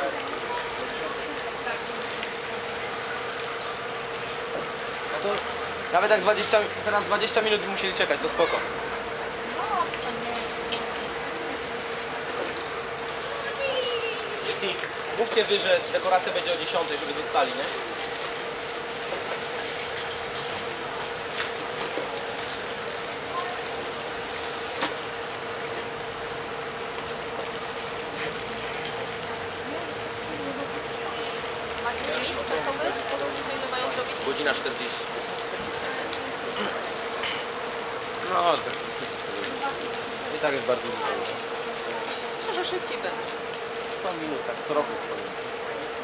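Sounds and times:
constant steady hum: 0:00.0 - 0:46.0.

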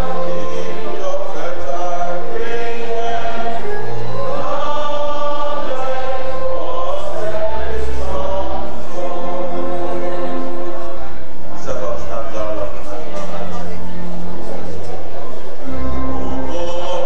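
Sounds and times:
crowd singing long-held notes: 0:00.0 - 0:17.0
low bass accompaniment: 0:00.0 - 0:17.0.

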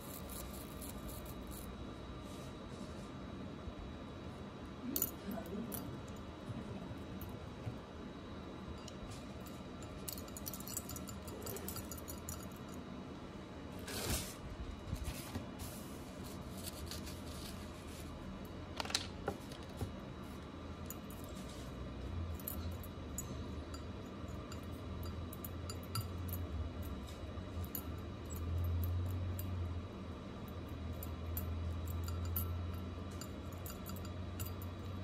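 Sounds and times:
metal clinking on glass: 0:30.8 - 0:35.0.

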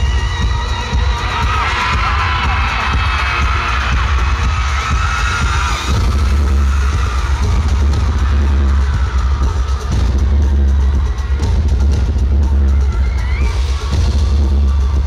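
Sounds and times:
fans screaming: 0:00.0 - 0:15.0
live concert music with bass beat: 0:00.0 - 0:15.0.

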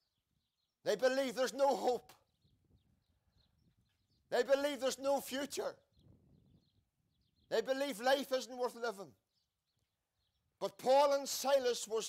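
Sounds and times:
faint bird chirps: 0:00.0 - 0:05.0, 0:05.6 - 0:10.7.

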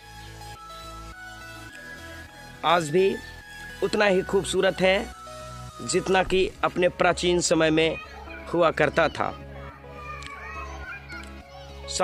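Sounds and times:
background music with bass pulse: 0:00.0 - 0:12.0.

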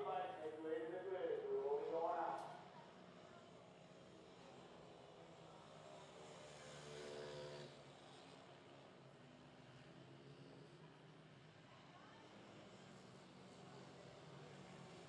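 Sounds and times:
faint motorcycle engines racing: 0:00.0 - 0:15.0.

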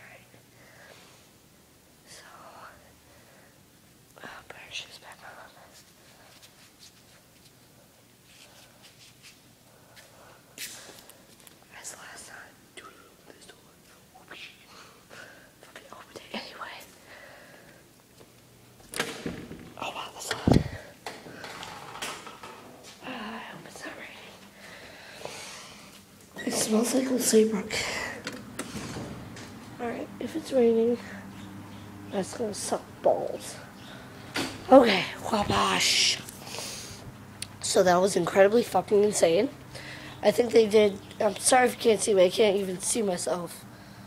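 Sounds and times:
person whispering: 0:00.0 - 0:00.4, 0:02.1 - 0:02.9, 0:04.2 - 0:05.8, 0:11.7 - 0:14.8, 0:15.6 - 0:16.9, 0:19.8 - 0:21.0, 0:23.0 - 0:24.5
door pushed open: 0:18.9 - 0:22.7, 0:28.2 - 0:29.6.

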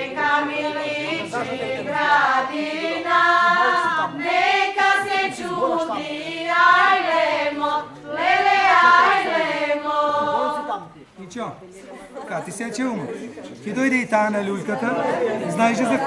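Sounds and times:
women singing in unison: 0:00.0 - 0:10.8.

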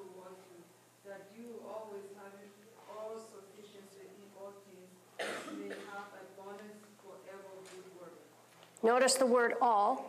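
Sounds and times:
person clearing throat: 0:05.2 - 0:06.1.

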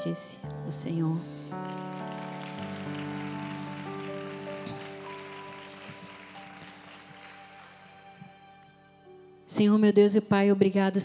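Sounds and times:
sustained keyboard chords: 0:00.0 - 0:09.6.

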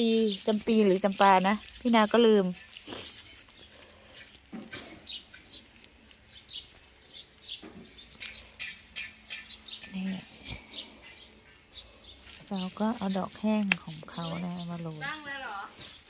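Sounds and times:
small birds chirping: 0:00.0 - 0:16.0.

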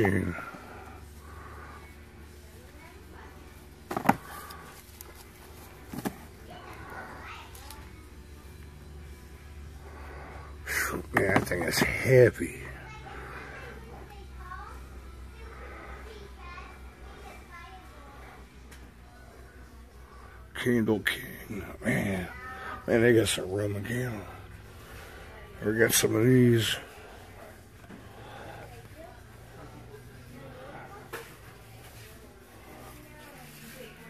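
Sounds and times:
faint voices talking: 0:00.0 - 0:34.0
steady low hum: 0:00.0 - 0:34.0
cardboard tubes knocking: 0:03.9 - 0:04.2.

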